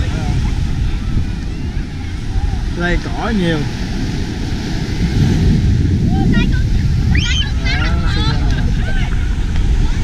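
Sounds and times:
wind buffeting microphone: 0.0s - 10.0s
people talking: 6.1s - 10.0s.

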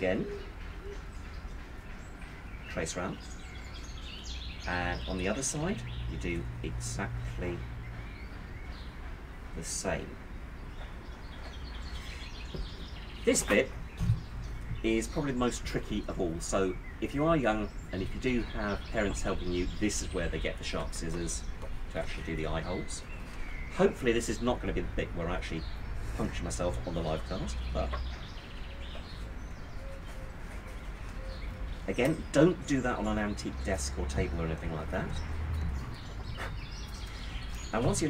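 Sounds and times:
faint bird calls: 0.0s - 6.4s, 25.5s - 32.5s
faint birds chirping: 0.0s - 38.0s.

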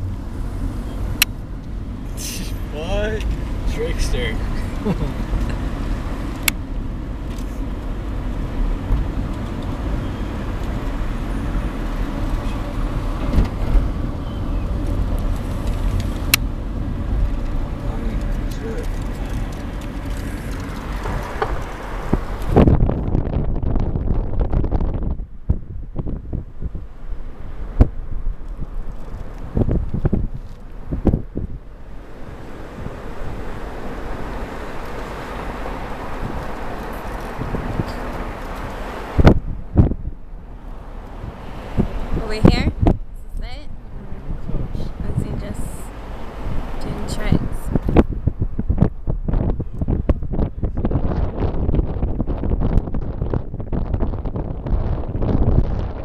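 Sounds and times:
car engine and tyre rumble: 0.0s - 56.0s.

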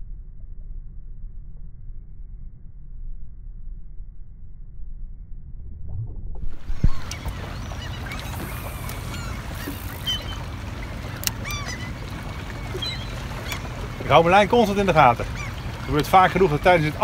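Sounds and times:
steady low rumble: 0.0s - 8.3s
short bird calls: 6.8s - 16.8s.

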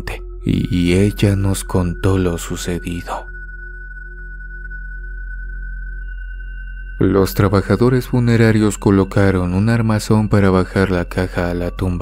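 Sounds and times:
high pure tone: 0.0s - 12.0s
low drone: 0.0s - 12.0s.

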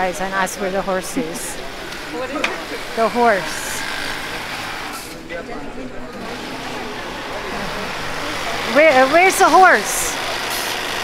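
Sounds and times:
indistinct background voices: 0.0s - 11.0s
market street din: 0.0s - 11.0s.

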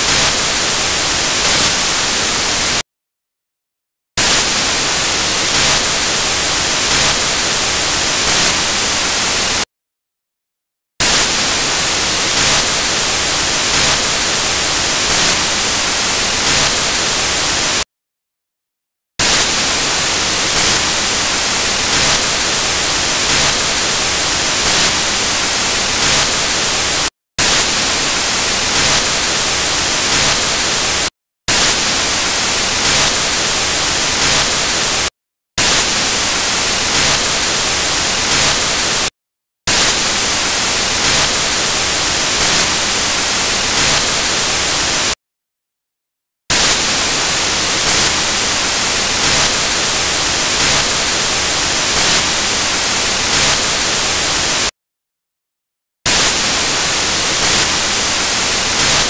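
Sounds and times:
static hiss: 4.2s - 9.6s, 11.0s - 17.8s, 19.2s - 30.9s, 46.6s - 54.5s.

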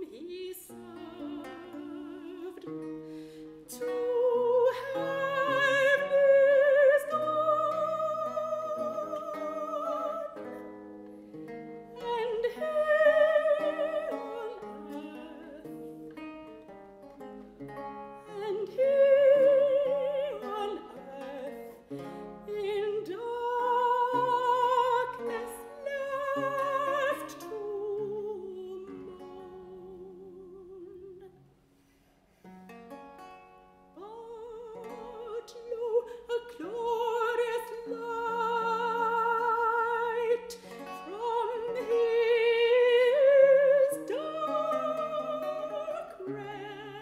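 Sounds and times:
soprano singing with vibrato: 0.0s - 3.0s, 3.6s - 10.8s, 11.9s - 16.4s, 18.2s - 31.4s, 34.0s - 47.0s
plucked lute: 0.0s - 47.0s.

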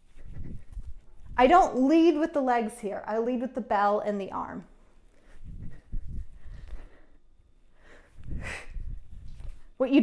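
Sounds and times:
low rumbling movement: 0.0s - 1.8s, 5.3s - 7.1s, 8.1s - 9.8s
woman breathing hard: 5.1s - 9.2s.

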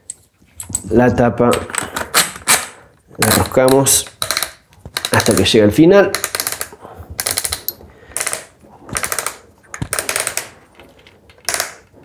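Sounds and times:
ratcheting clicks: 3.2s - 10.5s.

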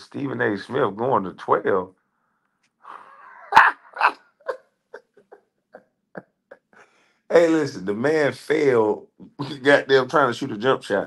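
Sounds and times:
man laughing: 6.5s - 10.8s.

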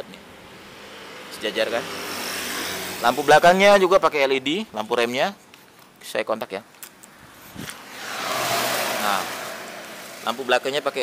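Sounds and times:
van passing: 0.4s - 4.1s, 7.3s - 11.0s.

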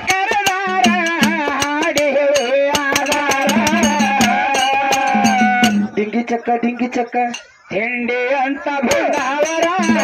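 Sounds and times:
hand cymbals clinking: 0.0s - 6.0s, 7.3s - 7.6s, 8.9s - 10.0s
man singing: 0.0s - 10.0s.

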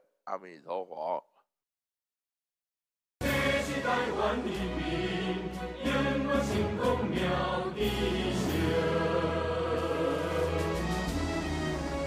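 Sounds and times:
choir singing: 3.2s - 11.6s.

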